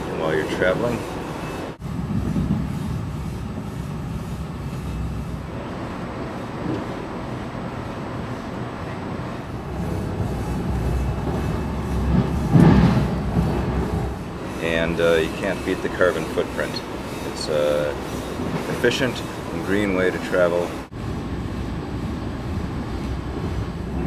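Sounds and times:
train wheels rumbling on rails: 0.0 - 24.0.

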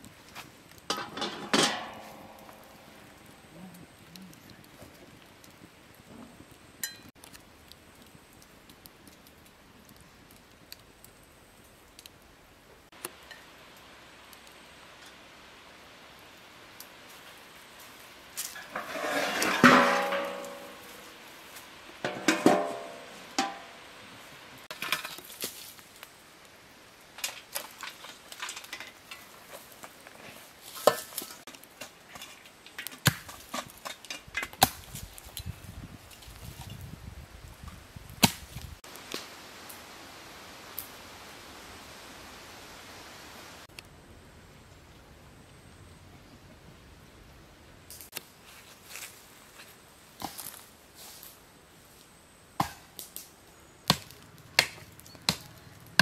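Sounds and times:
metal shovel clattering on coals: 0.3 - 3.3, 18.4 - 23.8, 24.7 - 25.8, 27.1 - 35.5
metal clanks and scrapes: 0.9 - 3.0, 18.4 - 21.2, 22.0 - 23.8.

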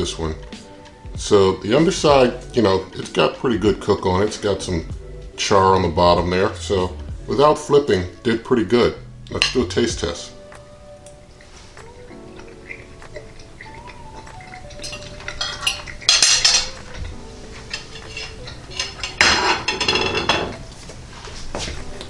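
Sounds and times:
faint background music: 0.0 - 22.0
dishes clattering: 9.3 - 9.7, 12.4 - 20.7
fork scraping on ceramic plate: 12.3 - 20.4.

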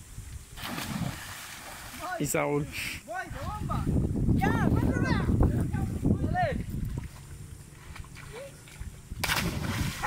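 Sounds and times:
loud splash into water: 9.2 - 10.0.

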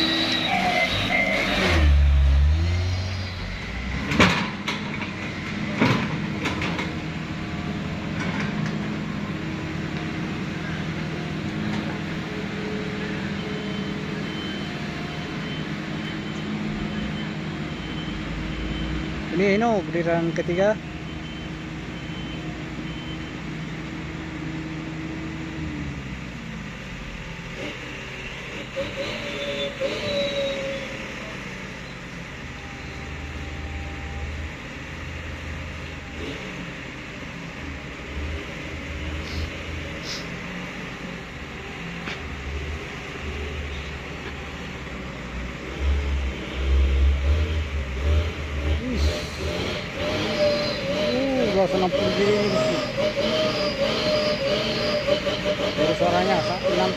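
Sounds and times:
diesel truck engine labouring: 0.0 - 56.9.

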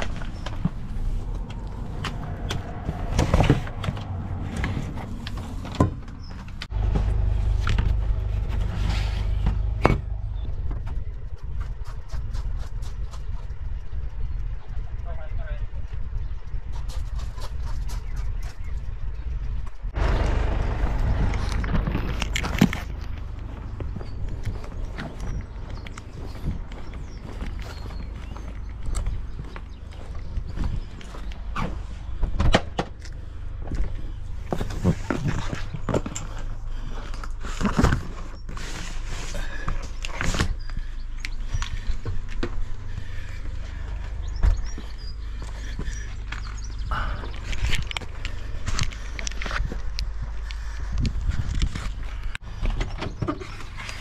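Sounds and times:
wind rumble on microphone: 0.0 - 37.0, 37.9 - 54.0.

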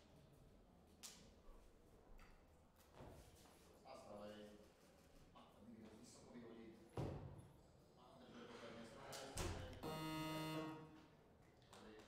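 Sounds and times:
buzzer steady tone: 9.8 - 11.0.

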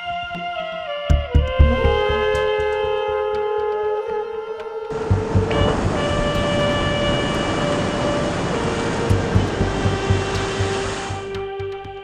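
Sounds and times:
churning sea water and surf: 0.0 - 12.0
held electric trumpet tones: 0.0 - 12.0
low pulse: 1.1 - 11.9.

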